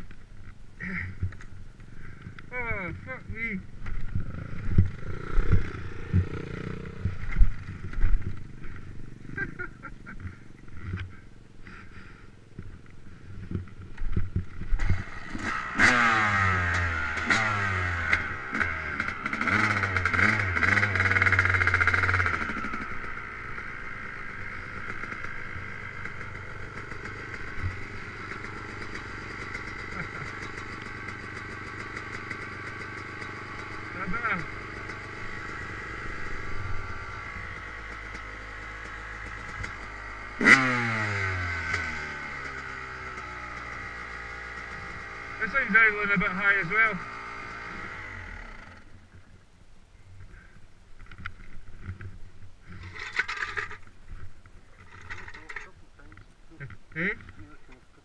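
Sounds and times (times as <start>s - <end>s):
dirt bike engine revving: 2.0s - 12.2s, 13.4s - 49.0s.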